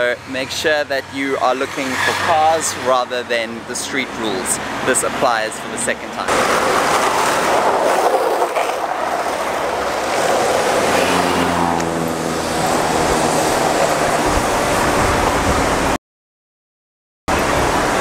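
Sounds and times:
cars driving through intersection: 0:00.2 - 0:15.9.

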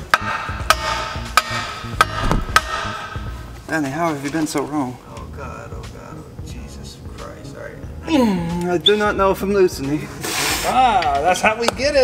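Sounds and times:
wooden board striking wrench: 0:00.0 - 0:03.3.

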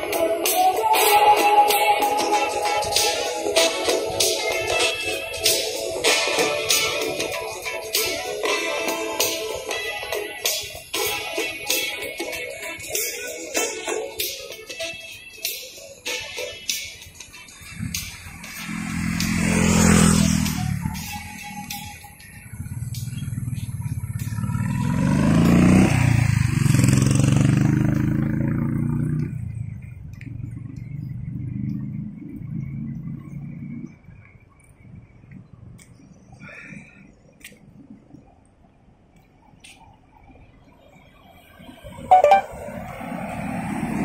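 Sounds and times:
music: 0:00.0 - 0:24.4, 0:42.1 - 0:42.5
vehicles passing by: 0:00.0 - 0:44.0.

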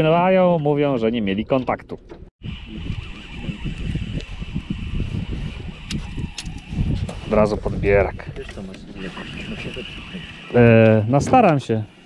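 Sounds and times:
wind buffeting microphone: 0:01.7 - 0:11.5.

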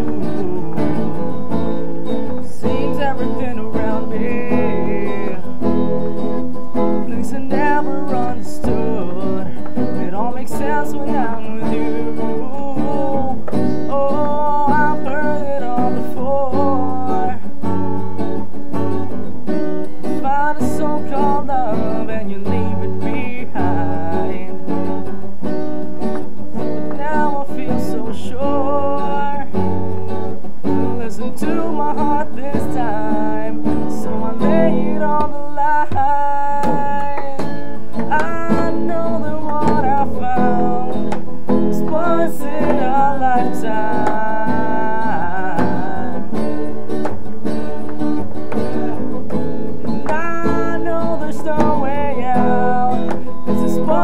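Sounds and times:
person singing: 0:00.0 - 0:18.0, 0:20.1 - 0:25.1, 0:26.6 - 0:30.0, 0:30.7 - 0:47.1, 0:48.5 - 0:54.0
acoustic guitar strummed and picked: 0:00.0 - 0:54.0.

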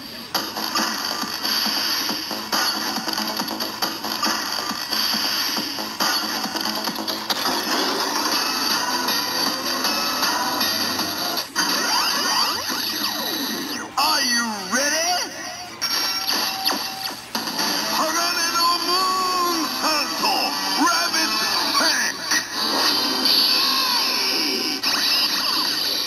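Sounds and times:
looping electronic tune: 0:00.8 - 0:22.5
recorded announcer voice: 0:13.8 - 0:15.7, 0:17.8 - 0:22.4.

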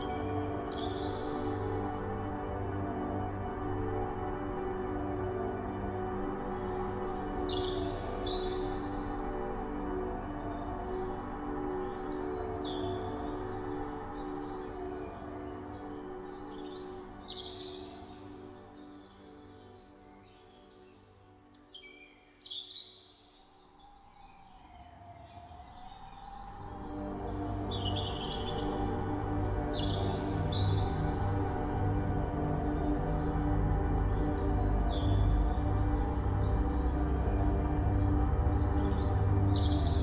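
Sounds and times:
ambient droning music: 0:00.0 - 0:40.0.

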